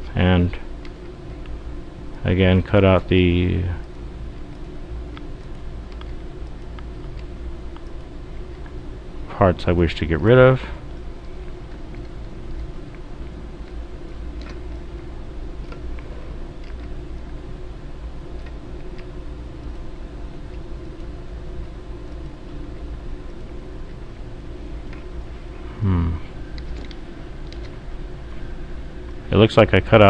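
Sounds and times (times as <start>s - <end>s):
low background hum: 0.0s - 30.0s
computer mouse clicks: 3.8s - 8.8s, 10.9s - 14.9s, 26.5s - 27.8s.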